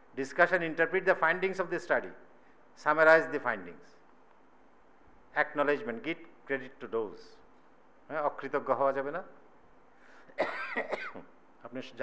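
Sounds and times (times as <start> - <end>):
man speaking: 5.4 - 7.4, 8.1 - 9.4, 11.6 - 12.0
man coughing: 10.3 - 11.3.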